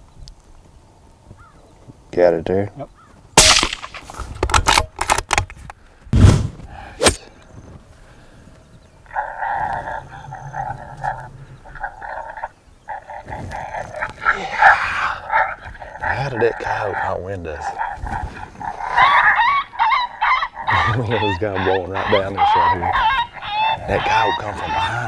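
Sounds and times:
suppressed rifle shot: 0:03.4 - 0:04.9.

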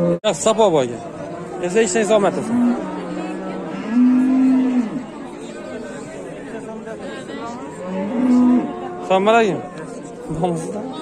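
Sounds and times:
cattle mooing: 0:01.2 - 0:05.1, 0:07.7 - 0:09.4.

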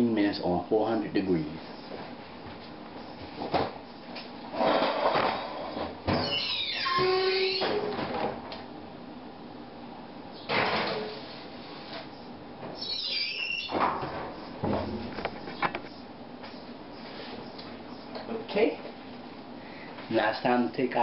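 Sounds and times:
oven door hinge squeaking: 0:06.1 - 0:08.0, 0:12.8 - 0:13.9
oven door thump: 0:13.7 - 0:15.2.

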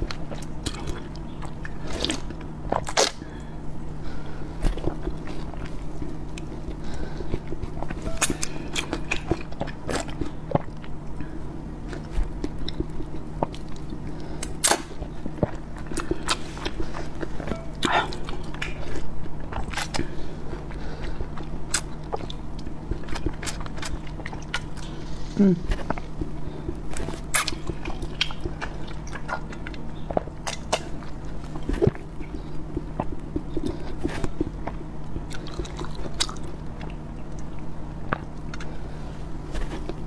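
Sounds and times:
steady low hum: 0:00.0 - 0:40.0.

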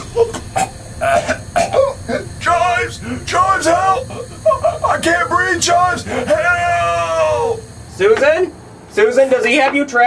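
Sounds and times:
man coughing and clearing throat: 0:00.0 - 0:02.4
man groaning: 0:00.0 - 0:07.6.

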